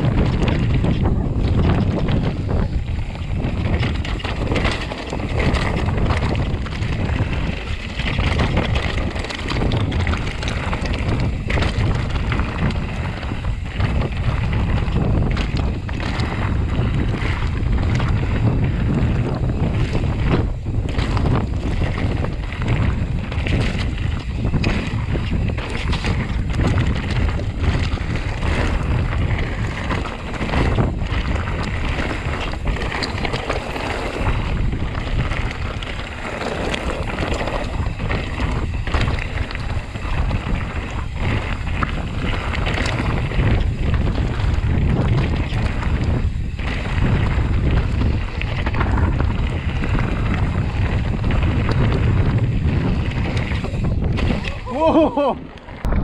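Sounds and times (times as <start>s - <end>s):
bike rattling and knocking: 0.0s - 56.0s
tyres rolling over loose stones: 0.0s - 56.0s
wind buffeting microphone: 0.0s - 56.0s.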